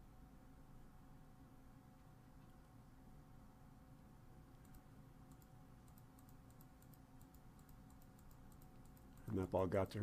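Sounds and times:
low steady hum: 0.0s - 10.0s
computer keys clicking: 4.5s - 9.6s.

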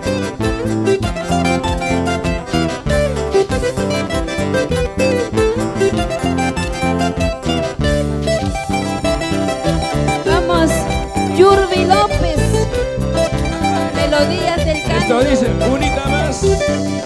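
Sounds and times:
electric bass: 0.0s - 17.0s
keyboard: 0.0s - 17.0s
lead guitar picking melody: 0.0s - 17.0s.

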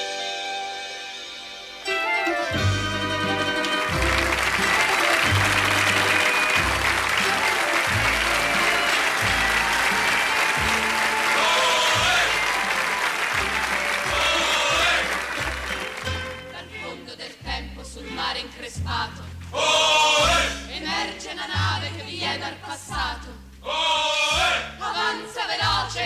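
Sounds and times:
orchestral music: 0.0s - 17.0s
audience applauding: 3.1s - 16.5s.

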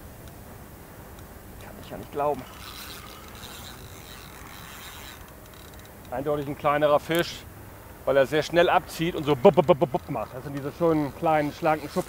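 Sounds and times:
fishing reel mechanism running: 2.0s - 7.4s.

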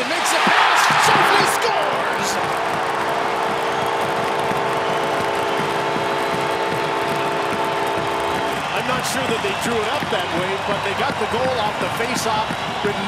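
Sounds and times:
crowd cheering: 0.0s - 13.0s
goal horn blast: 0.5s - 12.8s.

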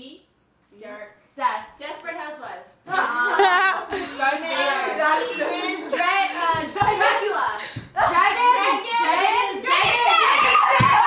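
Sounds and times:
excited voices calling out: 4.4s - 11.0s.

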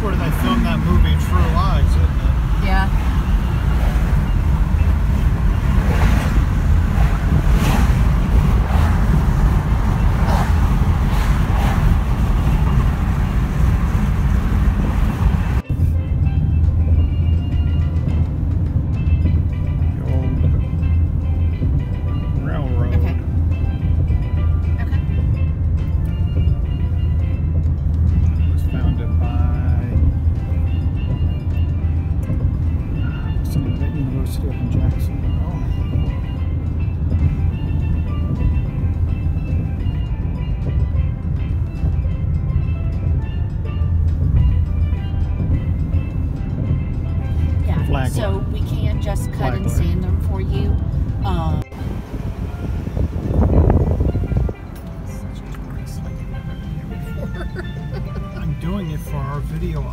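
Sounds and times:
wind and road rush: 0.0s - 59.9s.

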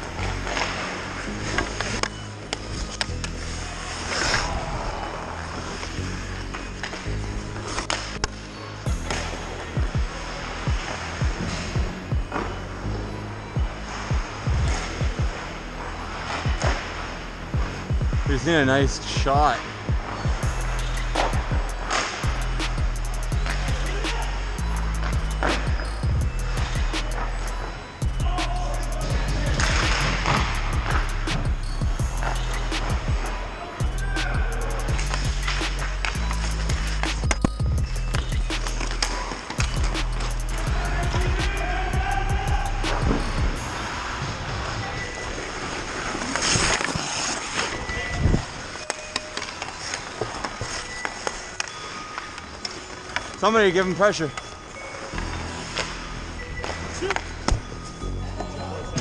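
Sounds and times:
hockey sticks and puck clacking: 0.0s - 8.4s, 9.0s - 13.0s, 13.9s - 24.4s, 25.0s - 43.5s, 44.6s - 57.8s
background music with bass line: 0.0s - 44.4s
skate blades scraping ice: 29.3s - 31.4s, 43.7s - 53.4s.

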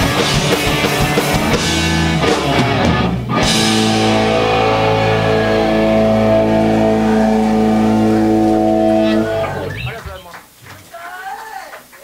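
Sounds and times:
electric guitars and bass chord: 0.0s - 10.3s.

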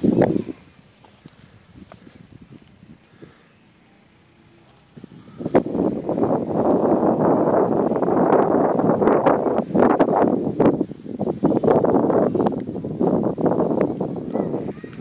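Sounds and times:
wind buffeting microphone: 0.0s - 3.4s, 4.3s - 15.0s.

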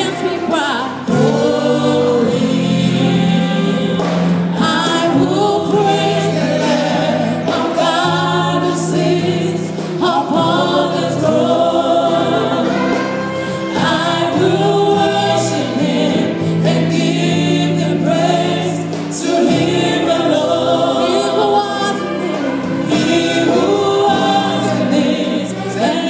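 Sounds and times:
backing singers: 0.0s - 26.0s
band accompaniment: 0.0s - 26.0s
woman singing gospel: 0.0s - 26.0s.

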